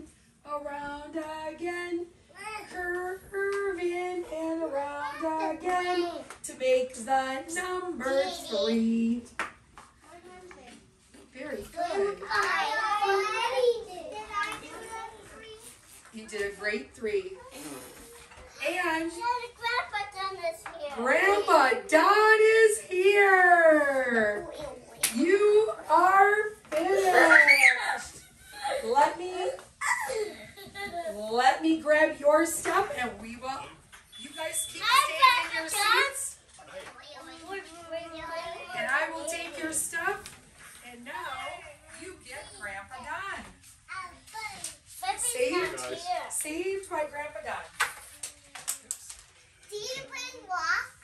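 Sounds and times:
young children calling and squealing: 0:26.9 - 0:28.8.

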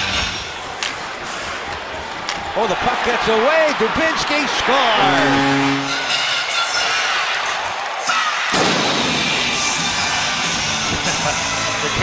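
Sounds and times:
crowd cheering and clapping: 0:00.0 - 0:12.0.

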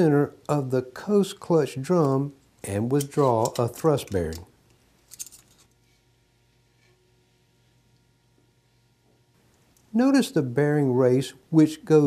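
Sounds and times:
metal bearing clinking: 0:02.0 - 0:05.8.

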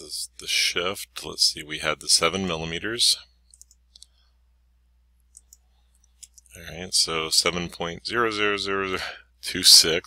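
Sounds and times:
computer mouse clicks: 0:03.5 - 0:04.2, 0:05.2 - 0:06.5.

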